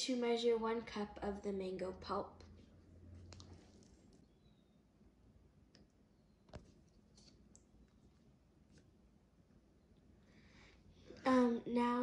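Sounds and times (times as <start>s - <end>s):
faint clicks and taps: 2.4s - 4.3s, 5.7s - 8.9s.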